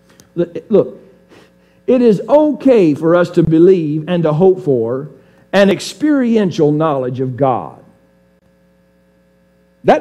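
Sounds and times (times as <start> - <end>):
faint electrical hum: 0.0 - 10.0
man speaking: 0.4 - 1.1, 1.9 - 7.9.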